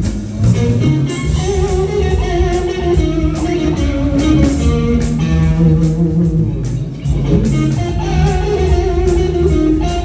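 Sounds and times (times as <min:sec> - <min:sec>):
bass guitar: 0:00.0 - 0:10.0
distorted lead electric guitar: 0:00.0 - 0:10.0
drums with cymbal hits: 0:00.0 - 0:10.0.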